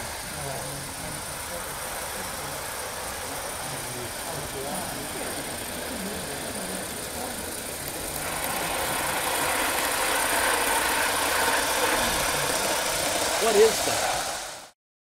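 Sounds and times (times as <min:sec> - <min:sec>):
steam locomotive running: 0:00.0 - 0:14.8.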